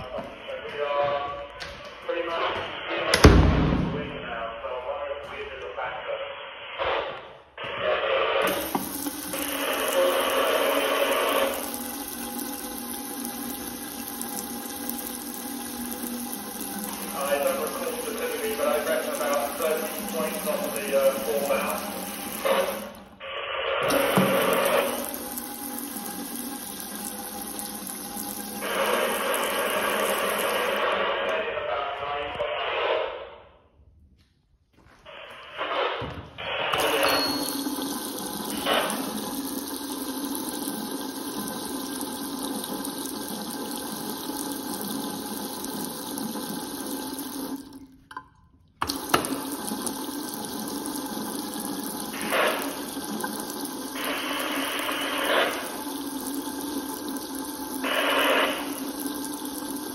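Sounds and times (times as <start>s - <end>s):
faucet water splashing into sink: 8.4s - 23.1s, 23.8s - 31.0s, 36.8s - 59.9s.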